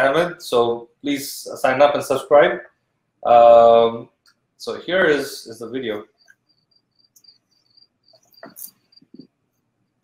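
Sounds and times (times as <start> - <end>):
crickets chirping: 3.6 - 10.0.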